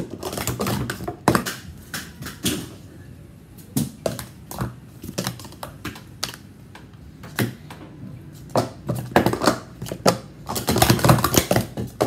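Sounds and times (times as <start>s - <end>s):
plastic cups clacking: 0.0s - 2.9s, 3.6s - 12.0s.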